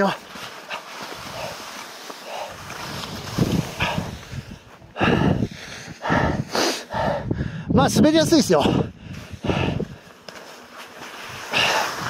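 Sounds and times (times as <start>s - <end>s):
skis scraping over snow: 0.0s - 4.8s, 10.0s - 12.0s
skier breathing: 0.2s - 7.7s, 8.7s - 12.0s.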